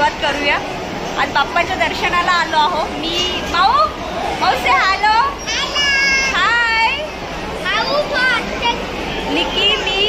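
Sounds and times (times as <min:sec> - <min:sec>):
steady background din: 0:00.0 - 0:10.0
children talking and calling out: 0:01.7 - 0:10.0.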